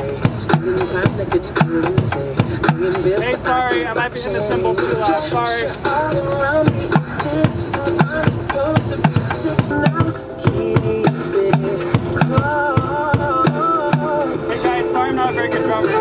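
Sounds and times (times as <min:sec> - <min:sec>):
pop song with singing: 0:00.0 - 0:16.0
drumsticks striking plastic jugs: 0:06.7 - 0:14.2.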